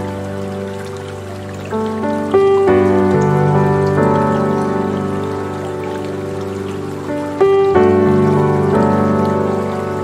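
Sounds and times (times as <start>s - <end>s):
soft piano chords: 0.0s - 10.0s.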